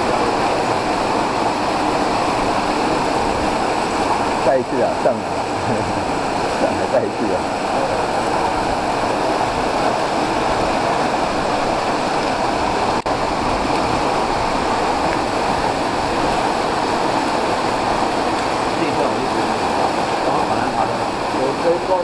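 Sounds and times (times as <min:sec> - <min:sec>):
waterfall rushing: 0:00.0 - 0:22.0.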